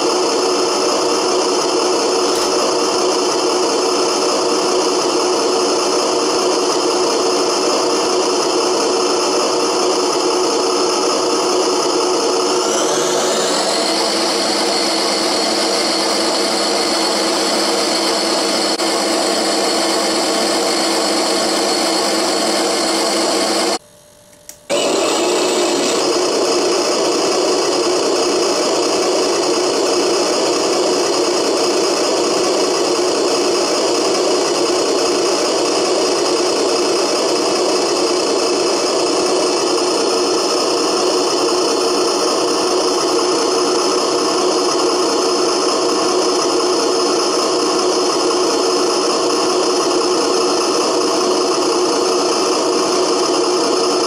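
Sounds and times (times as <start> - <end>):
toy tractor mechanical hum and rattle: 0.0 - 23.8, 24.7 - 54.0.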